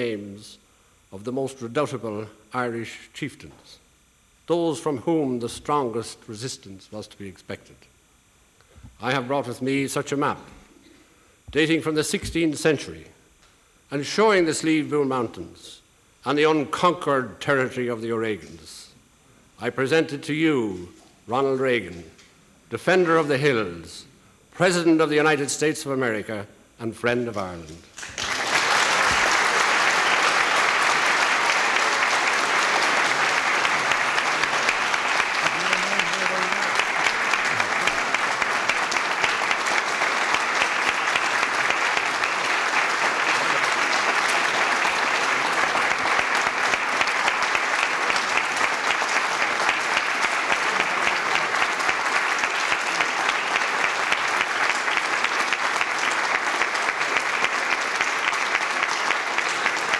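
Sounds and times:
audience applauding: 0:28.0 - 0:59.9.

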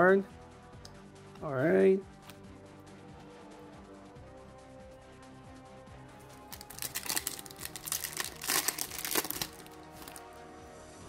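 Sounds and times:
background music: 0:00.0 - 0:11.0
foil wrapper crinkling and tearing: 0:06.4 - 0:10.3.

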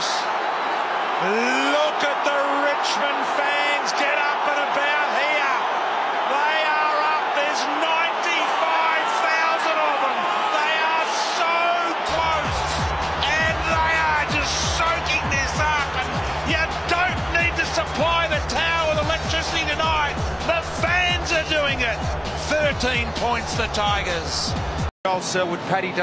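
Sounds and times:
stadium crowd cheering and shouting: 0:00.0 - 0:26.0.

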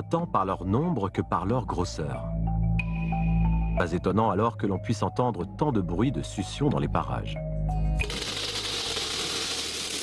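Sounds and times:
snail shells clattering into metal basin: 0:08.0 - 0:10.0.

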